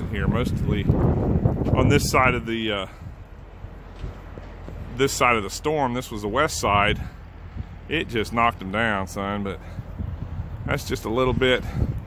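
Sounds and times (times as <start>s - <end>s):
low outdoor rumble and hum: 0.0s - 12.0s.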